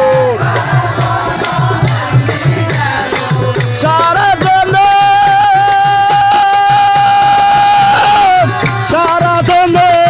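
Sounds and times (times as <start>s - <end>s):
regular drum beat: 0.0s - 10.0s.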